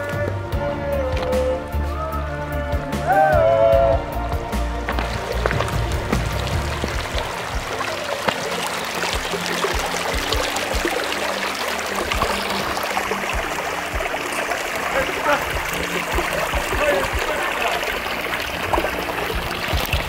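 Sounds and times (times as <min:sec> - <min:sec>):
background music: 0:00.0 - 0:20.0
stream running over stones: 0:04.3 - 0:20.0.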